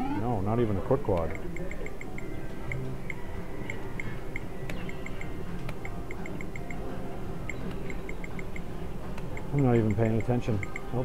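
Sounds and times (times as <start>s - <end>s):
low background din: 0.0s - 11.0s
sharp clicks: 1.1s - 6.8s.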